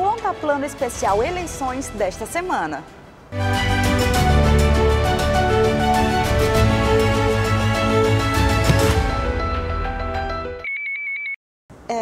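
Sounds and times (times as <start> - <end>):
television intro theme music: 3.3 - 10.7.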